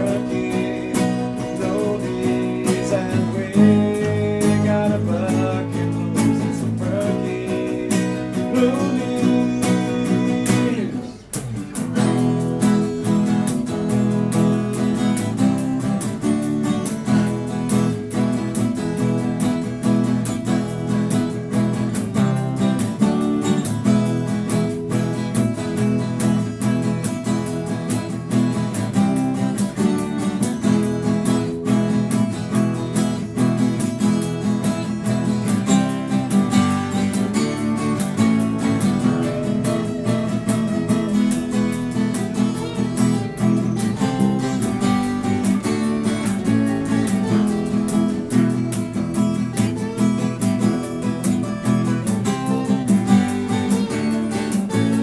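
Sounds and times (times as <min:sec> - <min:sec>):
acoustic guitars playing blues: 0:00.0 - 0:55.0.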